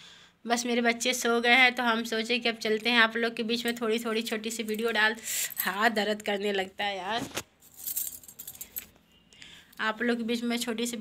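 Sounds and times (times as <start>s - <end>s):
glass bangles clinking: 7.6s - 9.0s.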